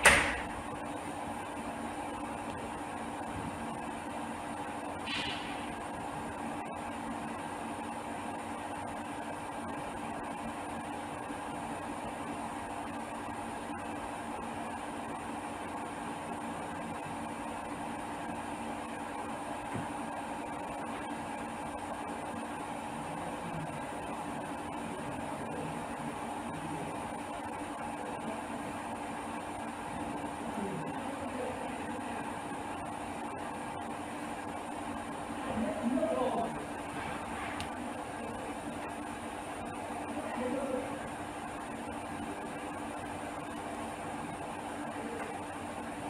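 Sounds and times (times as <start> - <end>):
steady hum and hiss: 0.0 - 46.0.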